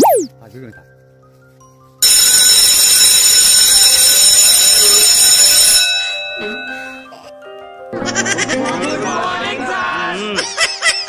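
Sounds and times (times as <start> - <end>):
electric alarm bell ringing: 2.0 - 7.0.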